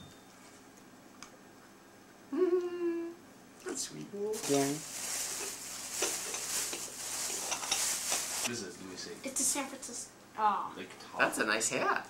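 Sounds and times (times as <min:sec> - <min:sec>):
person humming: 0:02.3 - 0:03.2.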